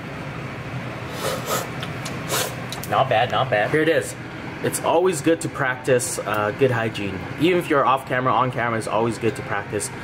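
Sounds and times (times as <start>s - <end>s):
slurping from a spoon: 1.1s - 2.6s.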